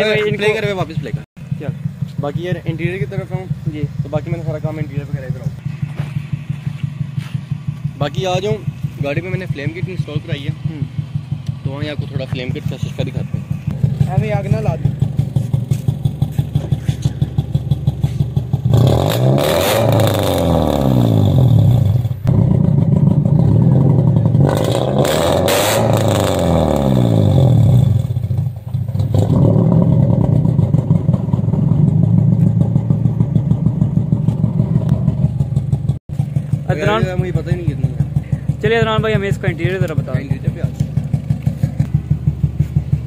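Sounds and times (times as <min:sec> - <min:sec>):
car engine idling and revving: 0:00.0 - 0:43.0
exhaust cracks: 0:00.0 - 0:43.0.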